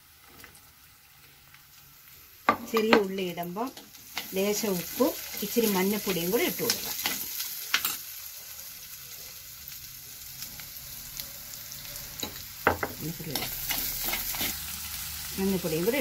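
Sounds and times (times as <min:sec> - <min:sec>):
food sizzling in oil: 0:00.0 - 0:16.0
steel spoon scraping a pot: 0:13.4 - 0:14.6.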